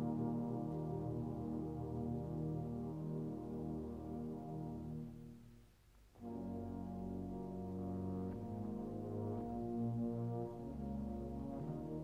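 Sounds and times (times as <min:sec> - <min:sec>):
brass band playing chords: 0:00.0 - 0:05.3, 0:06.2 - 0:12.0.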